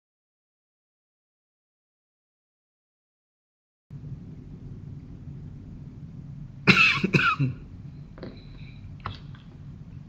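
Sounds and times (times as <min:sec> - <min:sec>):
steady low hum: 0:03.9 - 0:10.0
person coughing: 0:06.7 - 0:07.7.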